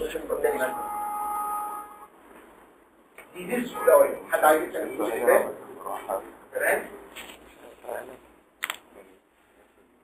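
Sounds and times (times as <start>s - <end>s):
steady two-pitch tone: 0.4s - 2.1s.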